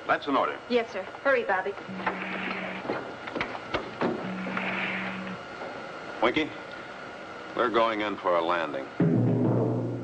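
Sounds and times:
low electronic buzzes: 1.2s - 10.0s.

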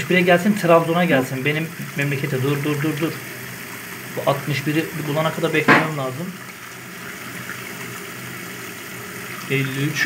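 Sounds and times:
water running from tap into sink: 0.0s - 10.0s.

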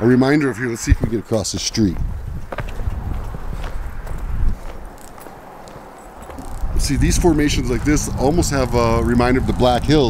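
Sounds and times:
wind buffeting microphone: 0.0s - 10.0s
motorcycle engine rumble: 2.0s - 10.0s.

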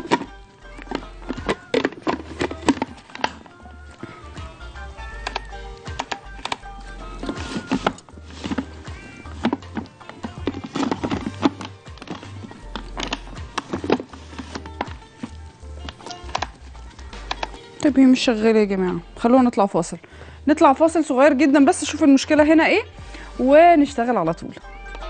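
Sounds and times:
music with percussion and bass: 0.0s - 19.1s.

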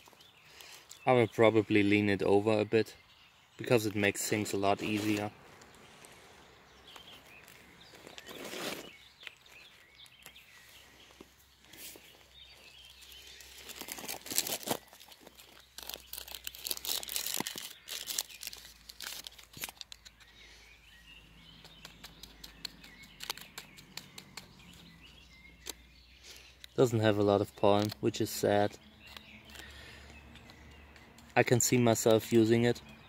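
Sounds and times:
paper crinkling: 4.7s - 5.3s, 7.0s - 10.4s, 13.0s - 20.3s
rustling scrape: 4.7s - 5.3s, 8.0s - 9.0s.

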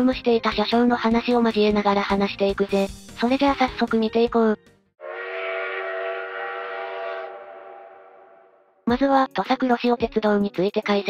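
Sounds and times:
train horn chord: 5.0s - 8.8s.

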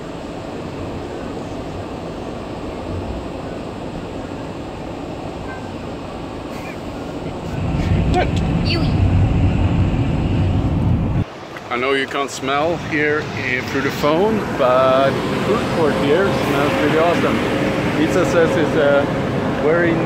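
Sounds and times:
road and engine rumble in van: 0.0s - 11.4s, 12.6s - 20.0s.

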